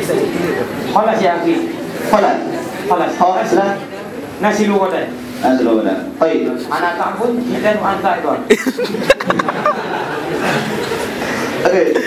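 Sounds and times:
man talking into microphone: 0.0 - 3.8, 4.4 - 8.7, 11.6 - 12.0.

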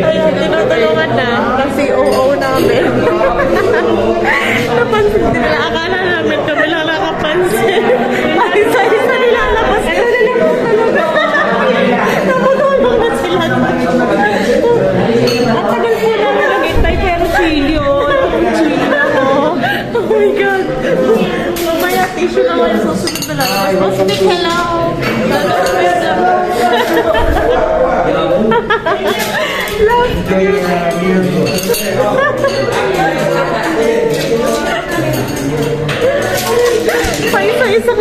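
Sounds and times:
overlapping voices: 0.0 - 38.0
cutlery clinking on a plate: 15.2 - 15.7, 22.9 - 26.0, 30.6 - 37.7.

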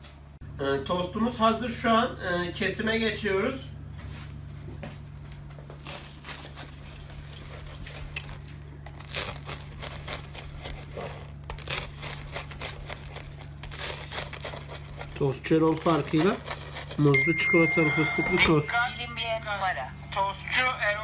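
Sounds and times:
steady low hum: 0.0 - 21.0
knife crunching through toasted crust: 5.7 - 17.6.

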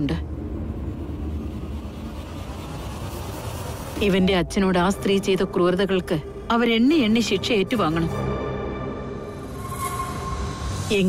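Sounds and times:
low rumbling drone score: 0.0 - 11.0.

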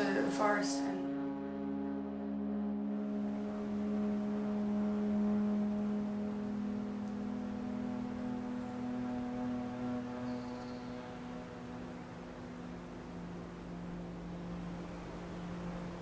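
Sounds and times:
low ambient drone tones: 0.0 - 16.0.

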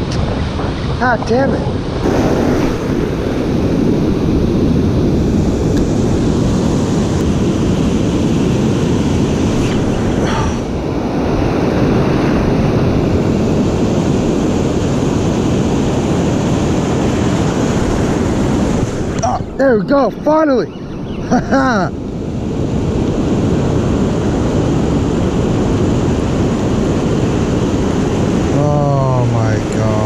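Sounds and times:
ocean surf breaking: 0.0 - 30.0
wind buffeting microphone: 0.0 - 30.0.

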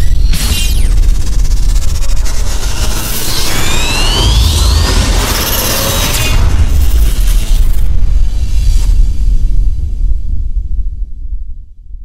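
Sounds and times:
rising sweeps: 2.5 - 8.1
deep booming rumble: 4.0 - 12.0.

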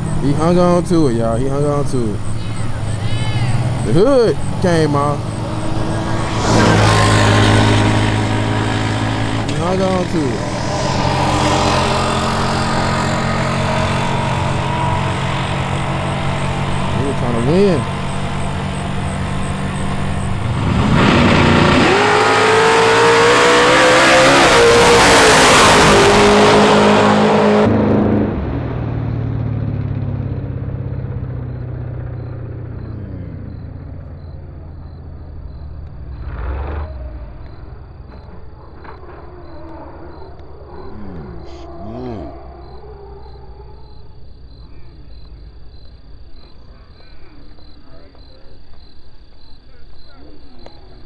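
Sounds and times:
racing car engine at full throttle: 0.0 - 39.2.

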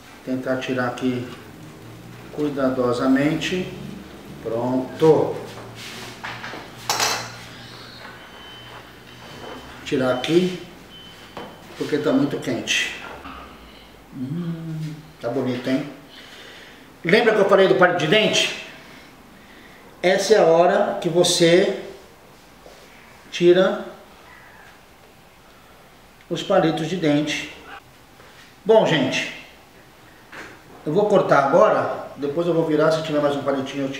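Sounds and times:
faint bird call: 24.2 - 24.8.

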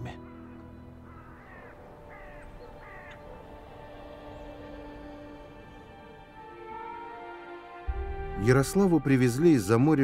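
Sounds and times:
faint background music: 0.0 - 10.0
bird cawing: 0.1 - 6.2.

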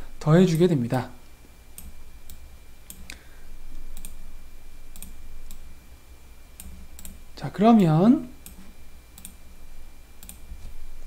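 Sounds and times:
low steady hum: 0.0 - 11.0
light clicks: 3.9 - 4.2.

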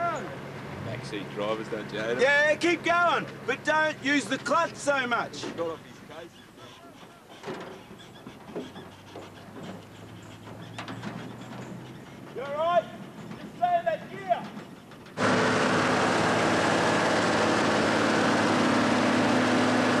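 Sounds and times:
vehicle on a dirt road: 0.0 - 20.0
low engine hum: 7.7 - 20.0.

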